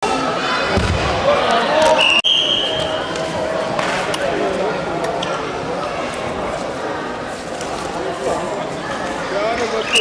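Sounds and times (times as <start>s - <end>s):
voices talking in a hall: 0.0s - 10.0s
referee's whistle: 2.0s - 3.1s.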